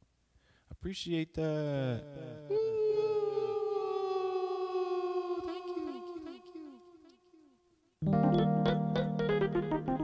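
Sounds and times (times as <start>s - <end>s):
held note with echo repeats: 1.7s - 9.2s.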